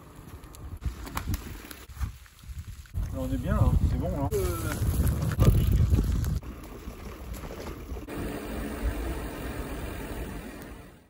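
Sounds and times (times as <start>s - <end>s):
wind rumbling on microphone: 0.4s - 8.1s.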